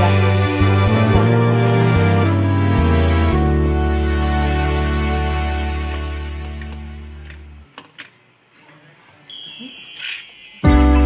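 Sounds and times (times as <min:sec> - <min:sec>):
background music: 0:00.0 - 0:07.7, 0:10.6 - 0:11.0.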